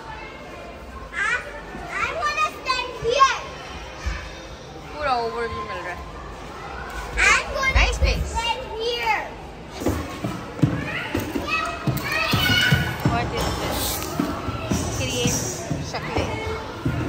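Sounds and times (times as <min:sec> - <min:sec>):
children shouting and chattering: 0:00.0 - 0:17.0.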